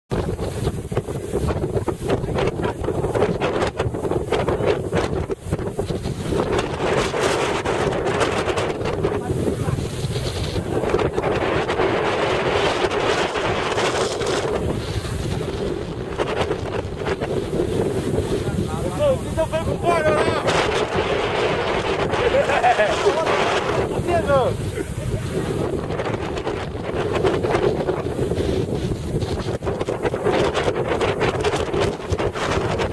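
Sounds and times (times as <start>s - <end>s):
wind buffeting microphone: 0.1s - 32.9s
person speaking: 18.2s - 20.8s, 22.2s - 25.6s.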